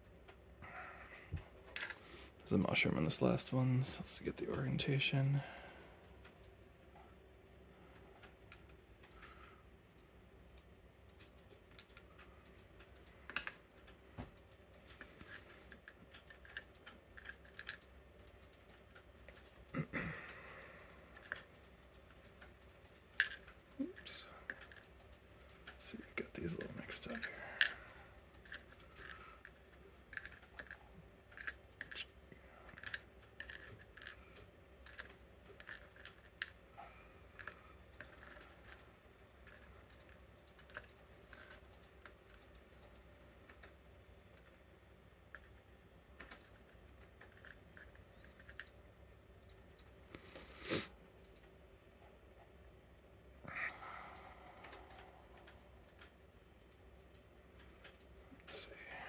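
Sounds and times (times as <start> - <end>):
tweezers clicking on metal pins: 14.3 - 34.2.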